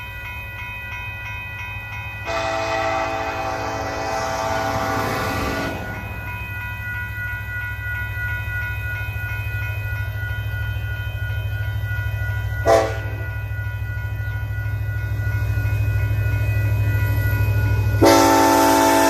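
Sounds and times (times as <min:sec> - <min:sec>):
crossing warning bell ringing: 0:00.0 - 0:19.0
low train rumble: 0:00.0 - 0:19.0
train horn blasts: 0:02.3 - 0:05.7, 0:12.7 - 0:13.2, 0:18.0 - 0:19.0.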